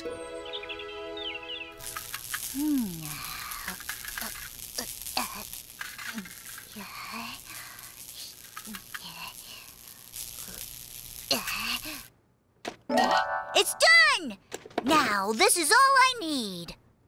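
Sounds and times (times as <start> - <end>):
welding sparks sizzling: 1.8 - 12.1.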